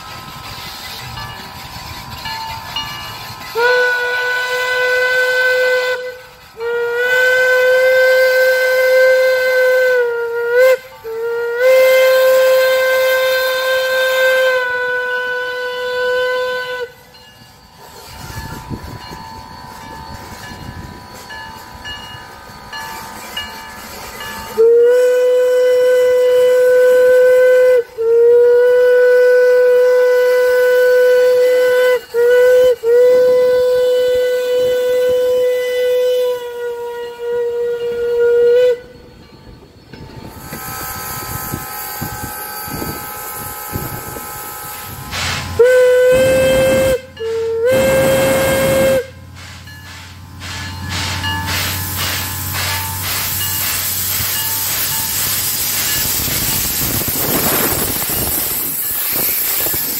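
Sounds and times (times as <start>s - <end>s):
steam locomotive whistle blasts: 0.0s - 39.2s, 40.2s - 59.9s
train running quietly: 0.0s - 59.9s.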